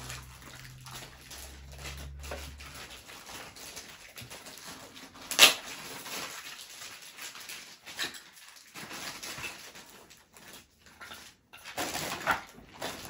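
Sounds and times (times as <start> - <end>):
plastic toys knocking and rustling: 0.0 - 13.0.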